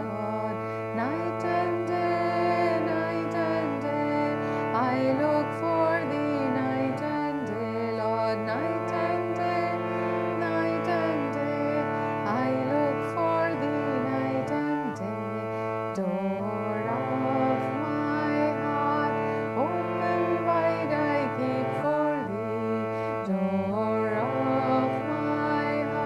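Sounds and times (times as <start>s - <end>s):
woman singing devotional chant: 0.0s - 26.0s.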